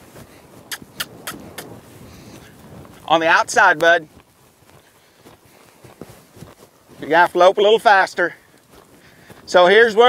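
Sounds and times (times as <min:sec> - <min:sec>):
horse tack noise: 0:00.0 - 0:04.9
horse hoofbeats on dirt: 0:00.0 - 0:10.0.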